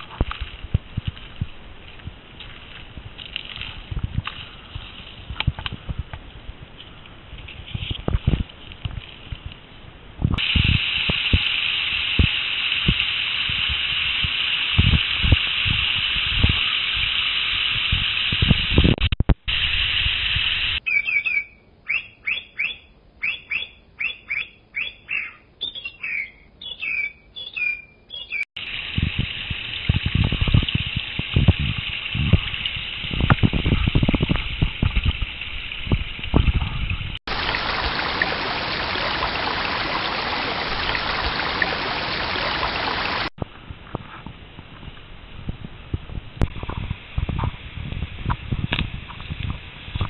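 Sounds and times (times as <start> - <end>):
wind buffeting microphone: 0.0 - 11.5, 12.2 - 20.4, 28.6 - 50.0
stream rushing over rocks: 37.3 - 43.3.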